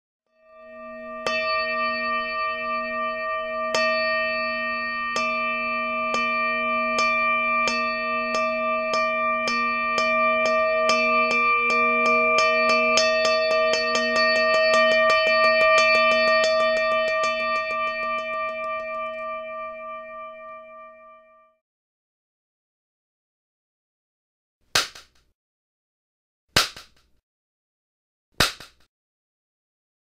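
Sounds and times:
singing bowl ringing: 0:00.3 - 0:21.6
sharp percussive strikes: 0:00.6 - 0:21.2.

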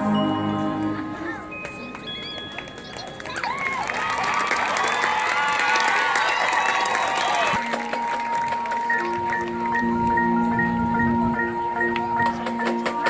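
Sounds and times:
mallet percussion pattern: 0:00.0 - 0:03.6, 0:07.6 - 0:13.0
crowd cheering and applauding: 0:01.8 - 0:09.9.

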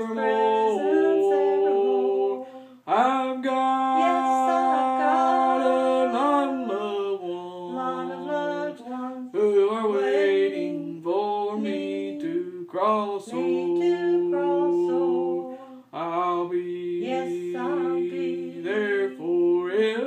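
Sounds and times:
person singing unaccompanied: 0:00.0 - 0:20.0.

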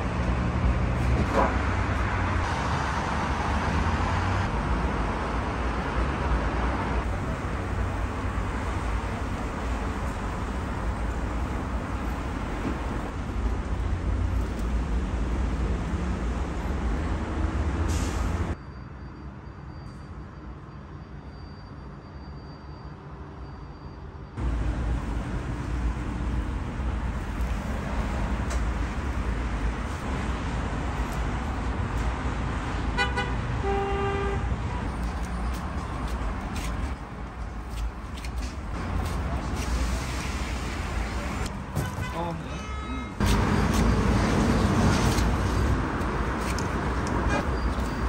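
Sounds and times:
road traffic rumble: 0:00.0 - 0:22.1, 0:24.3 - 0:48.0
car horn toot: 0:33.0 - 0:34.5, 0:41.7 - 0:43.7.

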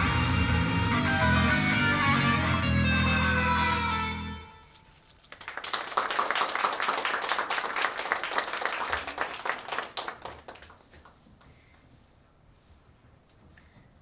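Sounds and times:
pop backing track chord: 0:00.0 - 0:04.6
audience clapping: 0:04.8 - 0:11.8.

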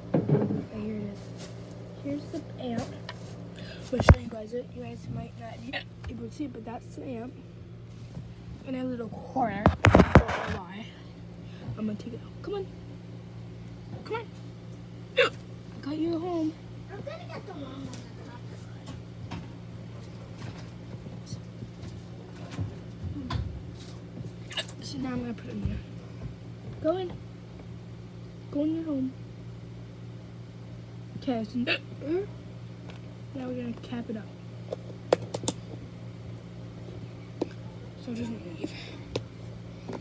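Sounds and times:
electric fan humming: 0:00.0 - 0:40.0.

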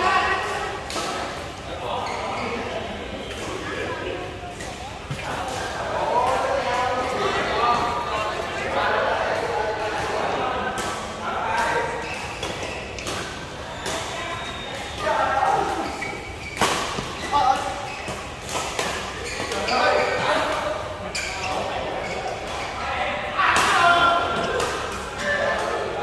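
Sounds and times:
players calling and chattering: 0:00.0 - 0:26.0.

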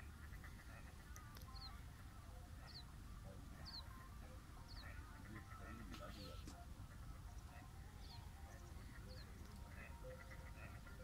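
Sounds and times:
lower bird calls: 0:00.0 - 0:11.0.

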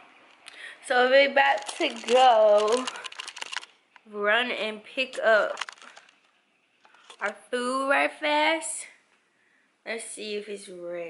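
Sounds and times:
small clicks and rustles: 0:01.4 - 0:04.1, 0:05.0 - 0:07.4.

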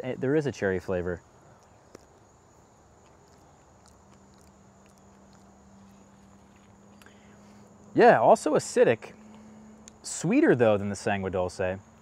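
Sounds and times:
faint low hum: 0:00.0 - 0:12.0
thin steady high whine: 0:00.0 - 0:12.0.

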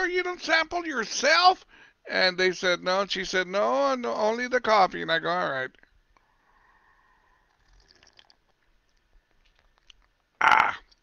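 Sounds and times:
sipping and swallowing coffee: 0:07.1 - 0:11.0
soft wet clicks: 0:07.7 - 0:10.3.

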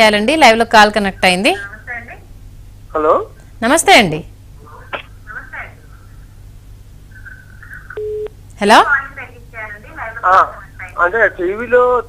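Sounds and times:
woman speaking: 0:00.0 - 0:02.3, 0:03.6 - 0:04.3, 0:05.3 - 0:05.8, 0:08.6 - 0:11.2.

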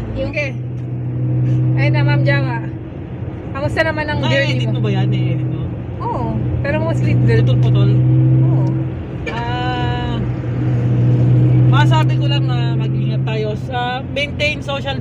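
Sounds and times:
car engine drone: 0:00.0 - 0:15.0
road noise inside car: 0:00.0 - 0:15.0.

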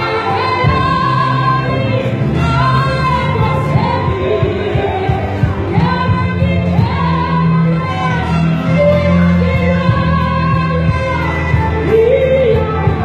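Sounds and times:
gospel choir singing: 0:00.0 - 0:13.0.

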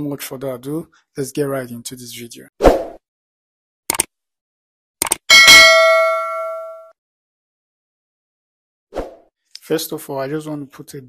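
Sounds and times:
notification bell ding: 0:05.3 - 0:06.9.

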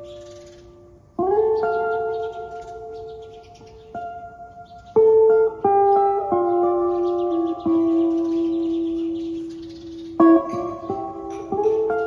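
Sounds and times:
slow electric guitar: 0:00.0 - 0:12.0.

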